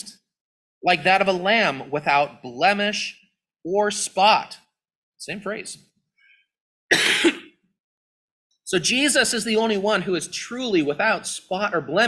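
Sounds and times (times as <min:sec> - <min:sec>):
man coughing: 0:06.9 - 0:07.6.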